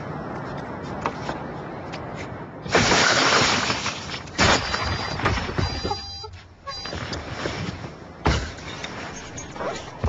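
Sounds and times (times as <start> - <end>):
glass shattering: 2.7 - 5.9.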